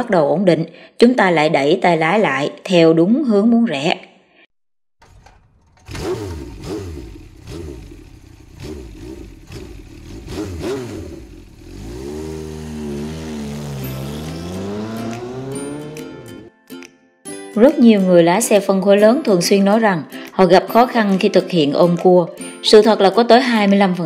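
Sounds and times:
motorcycle engine revving: 0:05.0 - 0:16.5.

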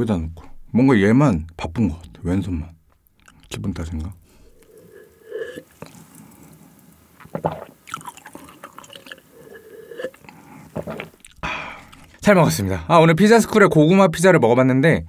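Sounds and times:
sipping and swallowing through straw: 0:03.2 - 0:03.6, 0:04.4 - 0:12.2.

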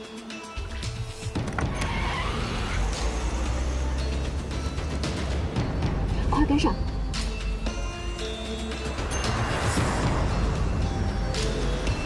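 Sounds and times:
car engine accelerating: 0:01.6 - 0:05.7.

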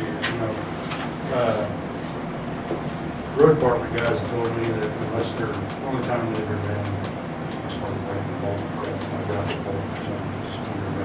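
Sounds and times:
indistinct conversational speech: 0:00.0 - 0:11.0
steady low hum: 0:00.0 - 0:11.0.

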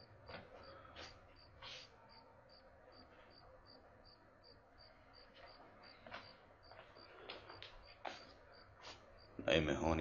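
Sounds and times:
cricket chirping: 0:00.0 - 0:09.5.

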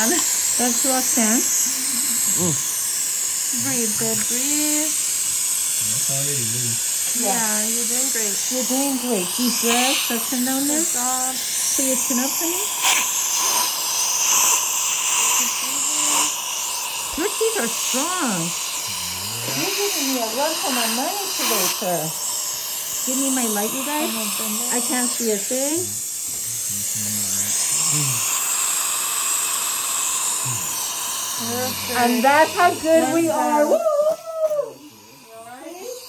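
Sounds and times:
dental suction hissing: 0:00.0 - 0:36.0
short low humming tones: 0:18.9 - 0:19.8, 0:25.8 - 0:28.2.

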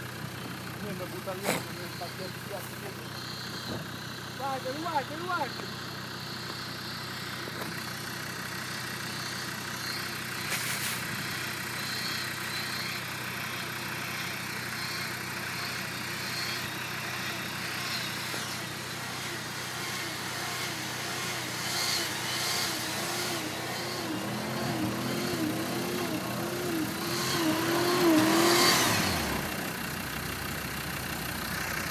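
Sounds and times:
car engine revving: 0:00.0 - 0:13.0, 0:14.0 - 0:31.9
engine idling: 0:00.0 - 0:31.9.

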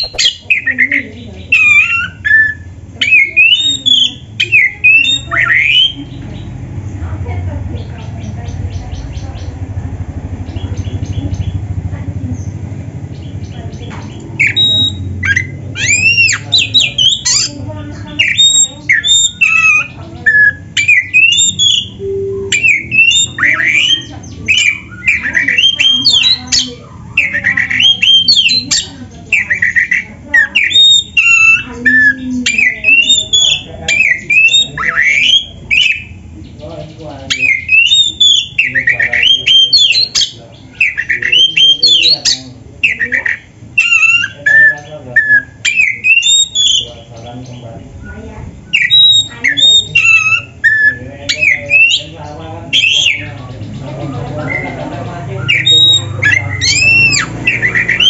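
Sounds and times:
songbird singing whistled phrases: 0:00.0 - 0:06.6, 0:13.2 - 0:36.2, 0:37.3 - 0:52.1, 0:52.7 - 0:53.4, 0:55.4 - 0:58.0.

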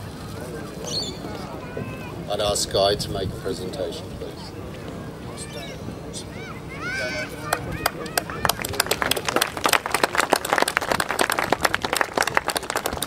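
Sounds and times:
crowd clapping: 0:07.4 - 0:13.0.

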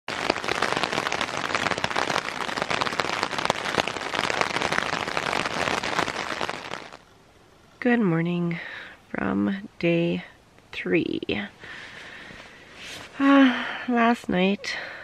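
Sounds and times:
rain falling: 0:00.0 - 0:07.8, 0:11.4 - 0:13.9.

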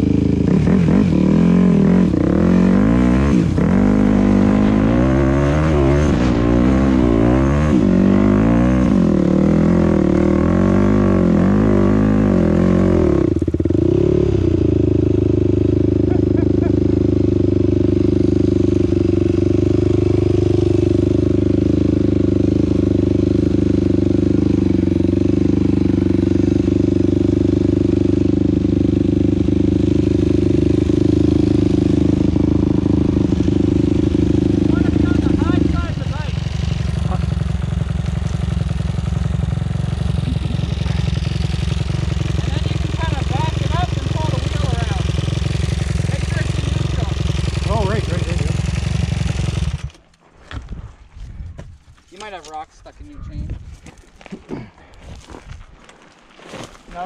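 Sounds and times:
dirt bike engine revving: 0:00.0 - 0:50.0.

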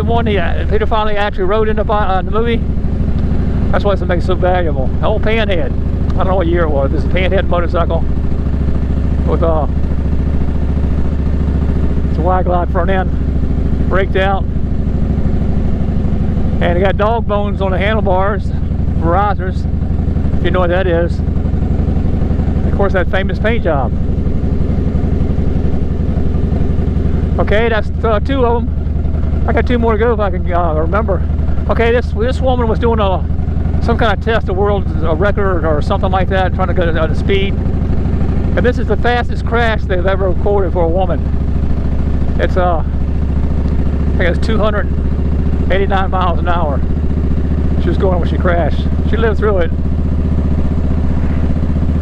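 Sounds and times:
motorcycle engine idling: 0:00.0 - 0:52.0.

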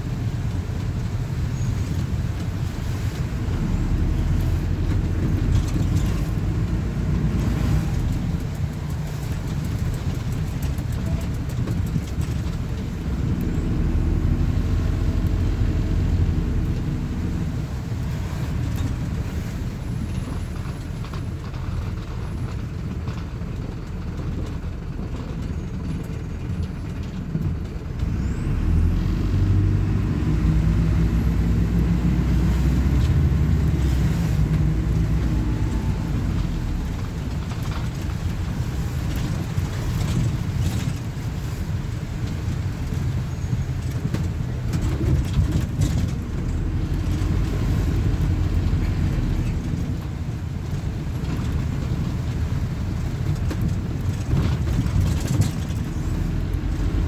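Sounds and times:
diesel engine: 0:00.0 - 0:57.0
road noise: 0:00.0 - 0:57.0.

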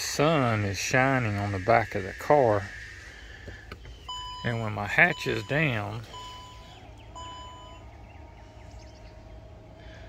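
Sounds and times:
liftgate motor humming: 0:03.4 - 0:10.0
warning chime beeps: 0:04.0 - 0:07.9.

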